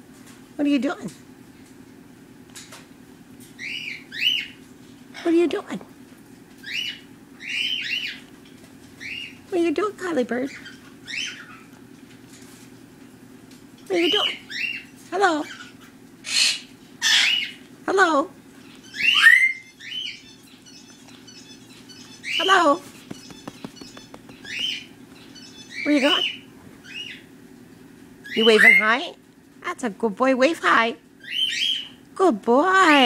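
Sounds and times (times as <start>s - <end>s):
macaw whistled calls: 6.6s - 8.2s, 15.5s - 17.6s, 18.7s - 27.3s, 28.2s - 28.9s, 31.2s - 32.0s.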